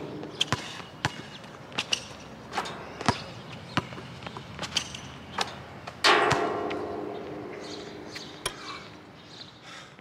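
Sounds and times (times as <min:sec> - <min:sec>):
basketball bouncing on court: 0:00.1 - 0:08.2
basketball hoop clanging and ringing: 0:04.6 - 0:08.5.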